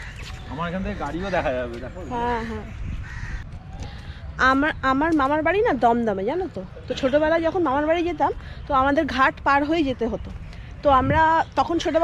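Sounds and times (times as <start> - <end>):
wind rumble on microphone: 1.8 - 5.7, 10.2 - 12.0.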